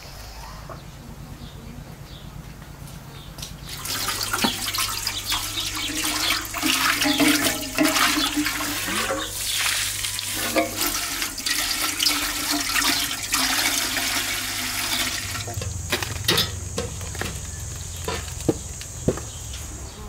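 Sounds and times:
hose water pouring into pot: 3.7s - 18.2s.

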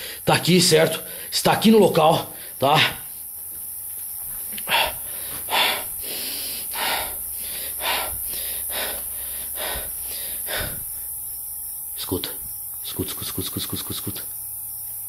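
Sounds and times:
person breathing close to microphone: 0.0s - 0.2s, 4.6s - 11.2s
steady hiss: 0.0s - 15.0s.

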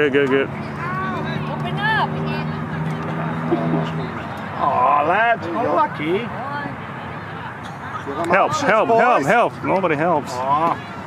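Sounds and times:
people calling and shouting: 0.0s - 11.0s.

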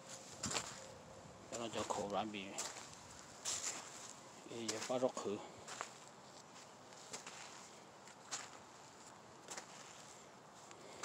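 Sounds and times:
footsteps on sandy soil: 0.0s - 11.0s
person speaking: 4.4s - 5.6s.

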